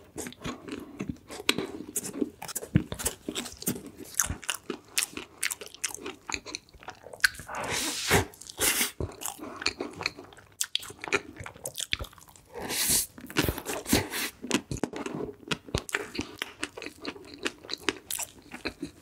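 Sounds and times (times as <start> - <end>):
person chewing cake: 0.0 - 19.0.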